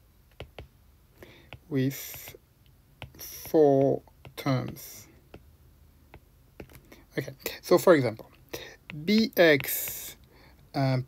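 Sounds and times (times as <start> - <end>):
stylus tapping on tablet screen: 0.2 - 7.6, 8.6 - 10.2.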